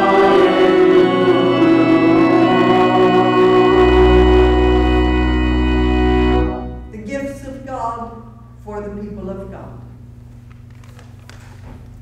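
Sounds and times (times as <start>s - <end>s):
deep organ pedal note: 0.0s - 7.3s
organ chord: 0.0s - 7.3s.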